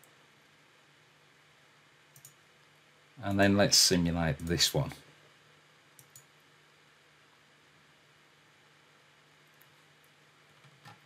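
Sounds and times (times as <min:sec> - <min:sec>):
faint steady hum: 0:00.0 - 0:11.0
computer mouse clicks: 0:02.1 - 0:02.4, 0:06.0 - 0:06.3.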